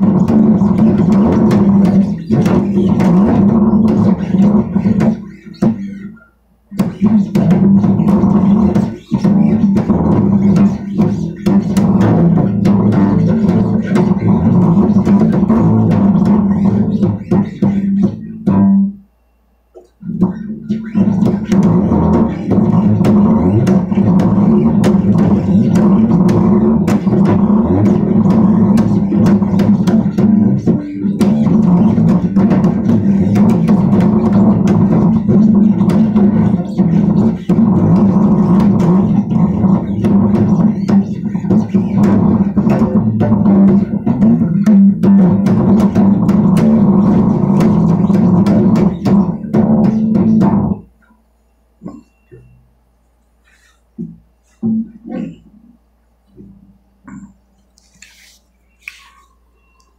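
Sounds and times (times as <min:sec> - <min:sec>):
bass guitar playing: 0:00.0 - 0:19.1, 0:19.8 - 0:51.0, 0:54.0 - 0:57.4.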